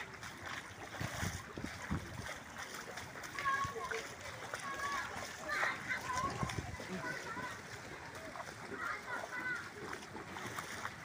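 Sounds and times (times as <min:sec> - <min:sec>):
footsteps splashing in water: 0:00.0 - 0:11.0.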